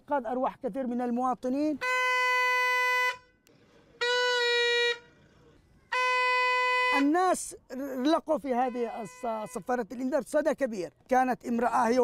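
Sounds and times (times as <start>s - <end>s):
plastic horn blasts: 1.8s - 3.4s, 4.0s - 5.1s, 5.9s - 7.1s, 8.5s - 9.8s.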